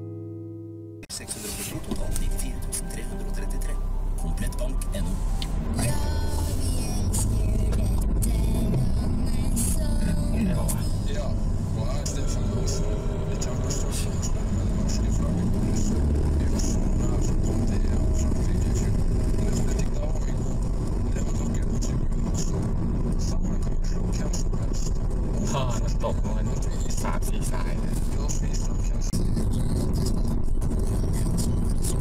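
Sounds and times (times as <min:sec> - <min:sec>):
car engine and tyre rumble: 0:01.2 - 0:32.0.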